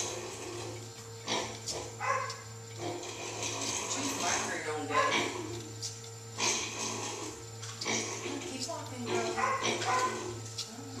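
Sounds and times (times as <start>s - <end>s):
machinery low hum: 0.0s - 11.0s.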